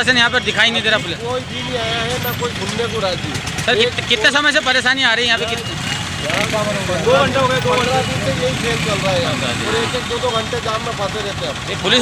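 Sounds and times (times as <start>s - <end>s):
people talking: 0.0s - 12.0s
vehicle engines running: 0.0s - 12.0s.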